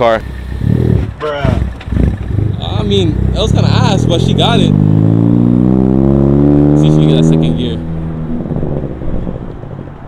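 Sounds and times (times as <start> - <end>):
car engine pulling away: 0.0 - 10.0.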